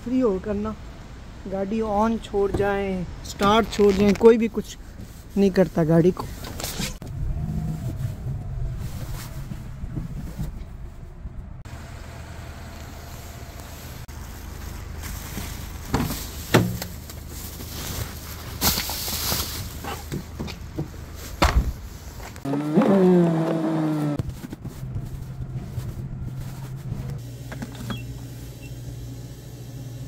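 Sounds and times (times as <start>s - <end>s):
short rustle: 3.4s - 11.2s, 12.7s - 22.5s
car engine idling: 10.7s - 17.7s.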